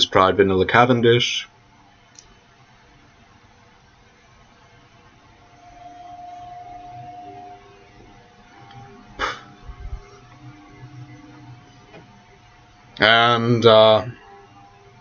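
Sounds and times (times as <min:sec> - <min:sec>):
faint held tone: 0:04.9 - 0:15.0.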